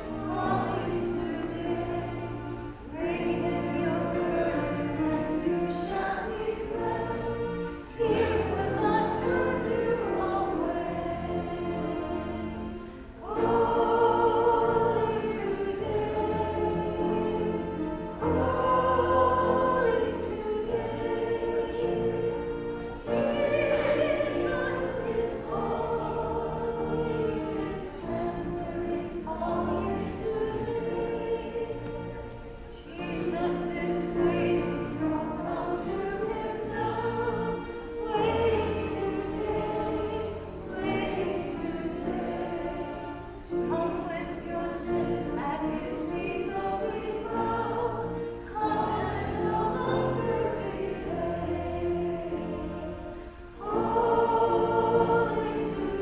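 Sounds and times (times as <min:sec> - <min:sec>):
musical accompaniment: 0:00.0 - 0:56.0
women singing worship song: 0:00.0 - 0:56.0.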